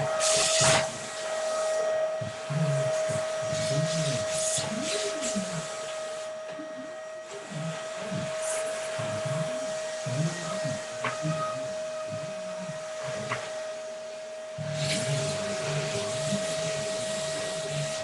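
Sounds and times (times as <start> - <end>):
vacuum cleaner running: 0.0 - 18.0.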